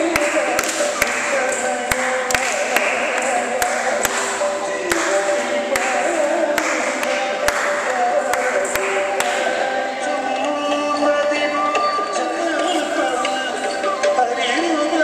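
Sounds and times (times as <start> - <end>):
sharp rhythmic taps: 0.0 - 9.7
person singing slow melody: 0.0 - 15.0.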